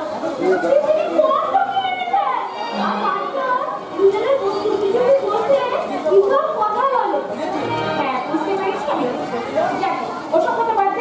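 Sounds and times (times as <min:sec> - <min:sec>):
background chatter: 0:00.0 - 0:11.0
stage dialogue: 0:00.0 - 0:11.0.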